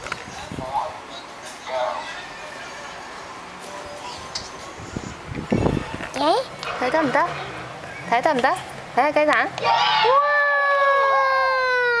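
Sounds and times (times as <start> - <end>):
child's long drawn-out wail: 9.7 - 12.0.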